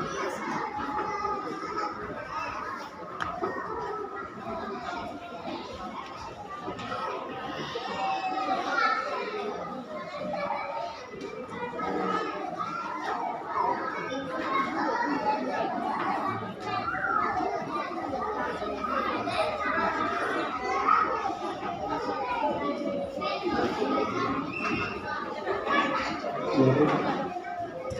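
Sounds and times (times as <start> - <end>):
young children chattering: 0.0 - 27.9.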